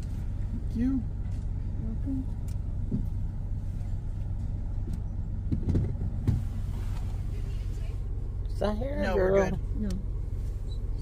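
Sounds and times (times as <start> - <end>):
engine idling inside cabin: 0.0 - 11.0.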